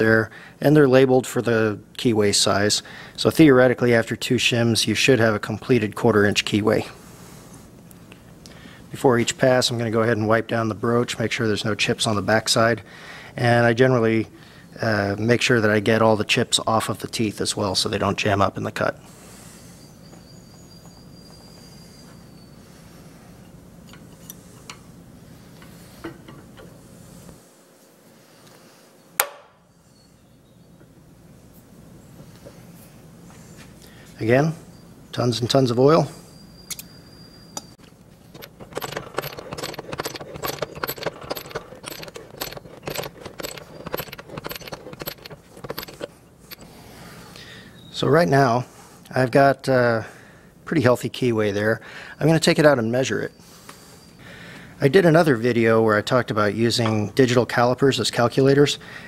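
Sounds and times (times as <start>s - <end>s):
steady low hum: 0.0s - 52.5s.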